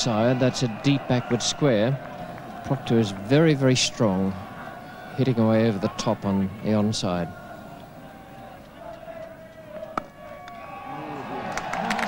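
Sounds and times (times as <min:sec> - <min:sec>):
crowd applause: 0:00.0 - 0:05.2, 0:10.5 - 0:12.0
crowd noise: 0:00.0 - 0:12.0
crowd shouting: 0:00.0 - 0:12.0.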